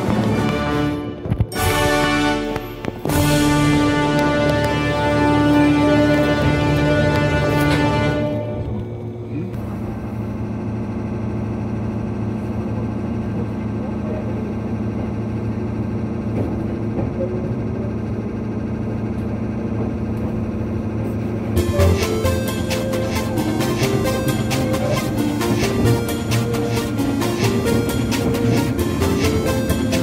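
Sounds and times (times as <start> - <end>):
rhythmic background music: 0.0 - 8.4, 21.6 - 30.0
low steady hum: 0.0 - 30.0
train running noise inside carriage: 0.0 - 30.0.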